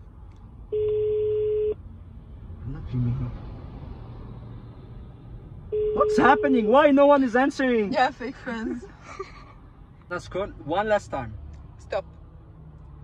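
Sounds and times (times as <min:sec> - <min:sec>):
phone ringback tone: 0:05.8 - 0:06.6.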